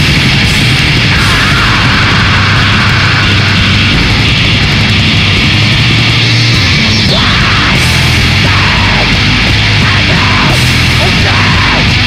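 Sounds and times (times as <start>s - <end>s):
distorted noise wall: 0.0s - 12.0s
low drone: 0.0s - 12.0s.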